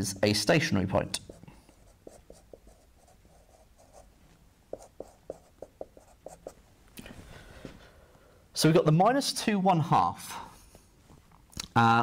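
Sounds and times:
marker pen writing on whiteboard: 1.1 - 4.1, 4.7 - 6.6.

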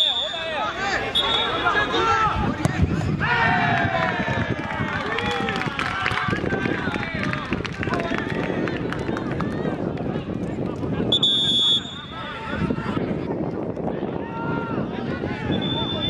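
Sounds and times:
whistle blast: 0.0 - 2.0, 11.1 - 12.2, 15.5 - 16.0.

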